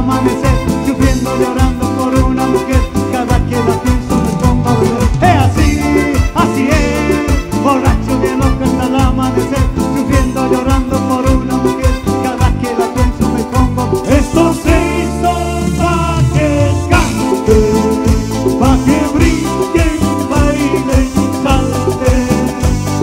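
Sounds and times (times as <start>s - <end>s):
live dance band music: 0.0s - 23.0s.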